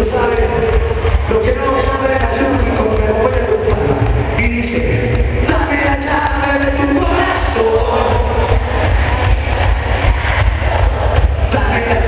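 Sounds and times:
heavy bass: 0.0s - 12.0s
live band through loudspeakers: 0.0s - 12.0s.

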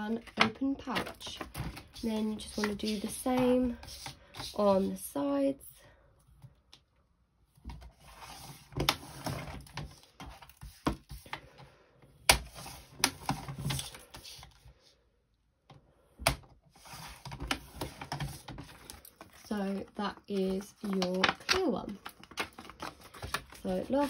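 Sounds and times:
plastic rustling and scraping: 0.0s - 5.0s, 7.6s - 11.6s, 12.4s - 14.8s, 16.7s - 24.0s.

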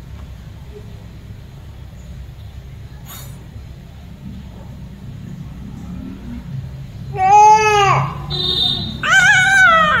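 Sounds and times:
baby whining cry: 9.0s - 10.0s.

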